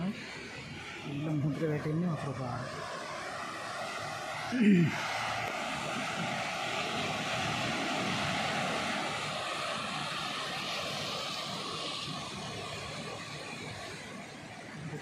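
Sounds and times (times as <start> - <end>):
sea surf washing up beach: 0.0 - 15.0.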